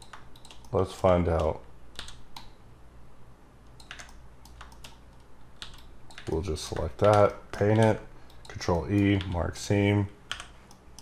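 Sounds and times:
keyboard and mouse clicks: 0.0s - 2.6s, 3.6s - 9.5s, 10.3s - 11.0s.

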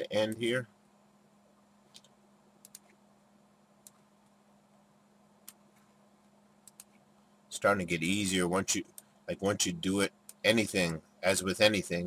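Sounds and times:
faint steady hum: 0.0s - 12.0s
computer mouse clicks: 1.9s - 3.0s, 3.8s - 4.1s, 5.4s - 5.9s, 6.6s - 7.0s.

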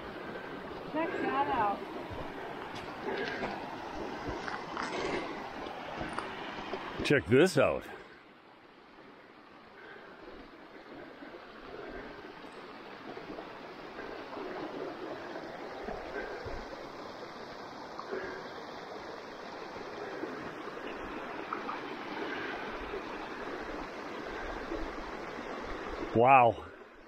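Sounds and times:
stream running over rocks: 0.0s - 27.0s.

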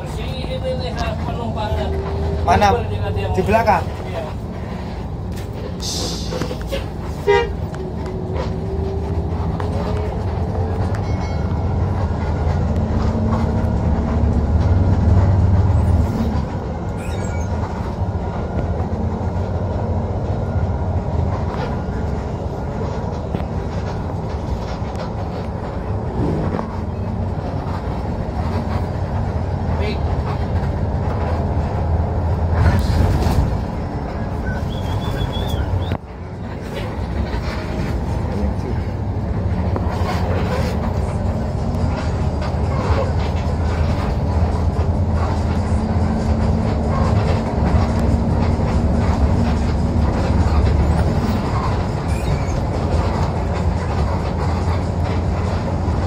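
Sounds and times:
bus diesel engine droning: 0.0s - 56.0s
road noise: 0.0s - 56.0s.

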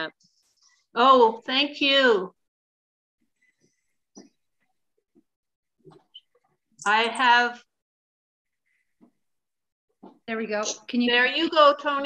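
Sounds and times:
person speaking: 6.8s - 7.7s.

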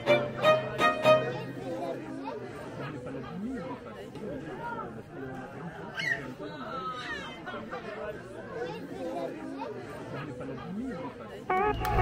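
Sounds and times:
violin music: 0.0s - 1.6s, 11.5s - 12.0s
people chattering: 0.0s - 12.0s.

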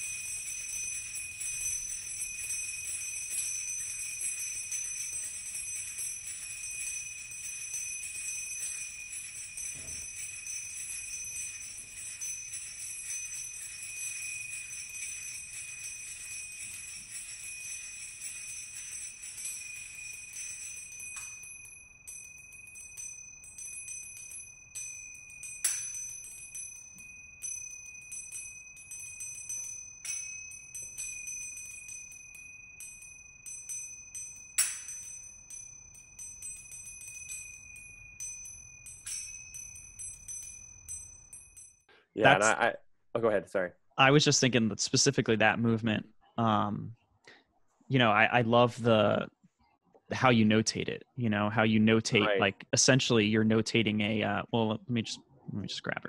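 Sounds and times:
finger cymbals ringing: 0.0s - 42.6s.

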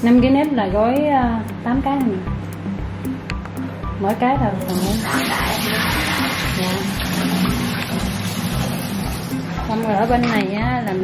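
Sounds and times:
music with steady beat: 0.0s - 5.1s, 5.8s - 11.0s
water swishing in basin: 4.7s - 9.5s.

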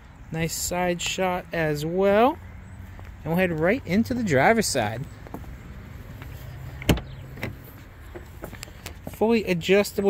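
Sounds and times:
car door latch clicking: 6.8s - 7.6s.

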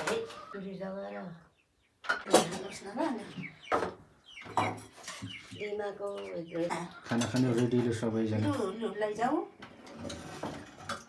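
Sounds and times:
spoons clinking on steel plates: 7.1s - 8.0s.

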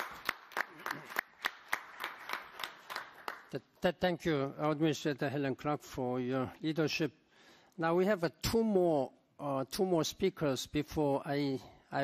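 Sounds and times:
light applause: 0.0s - 3.6s.

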